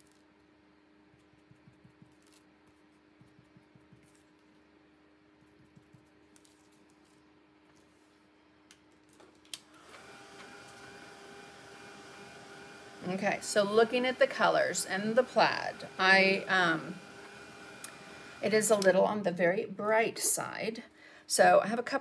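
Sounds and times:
faint brush strokes: 1.1 - 4.8, 5.4 - 8.4
hair dryer running: 9.6 - 19.0.

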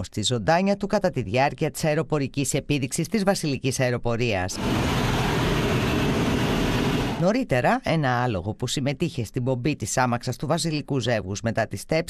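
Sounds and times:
jet engine rumble: 4.5 - 7.3
air rushing over canopy: 4.6 - 7.2.

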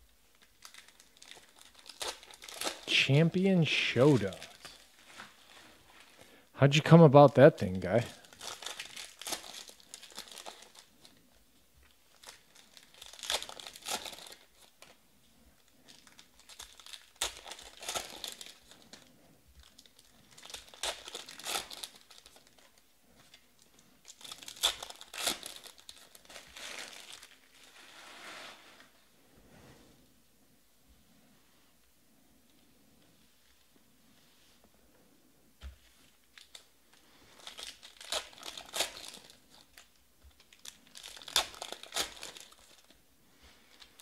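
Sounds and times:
foil wrappers tearing and crinkling: 0.6 - 3.1, 3.8 - 4.9, 8.0 - 11.0, 12.1 - 14.8, 15.9 - 22.7, 24.0 - 27.7, 37.4 - 43.0.

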